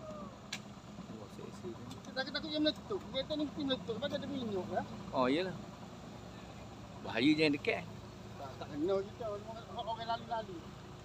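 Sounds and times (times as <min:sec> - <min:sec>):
engines idling: 0:00.0 - 0:11.0.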